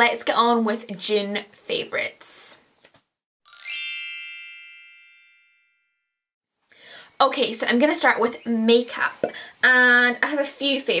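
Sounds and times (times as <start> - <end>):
bright chime: 3.5 - 6.0.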